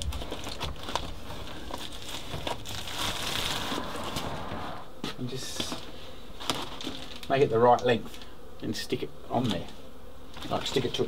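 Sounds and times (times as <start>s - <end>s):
foil bubble wrap crinkling: 0.0s - 4.9s, 5.6s - 7.5s.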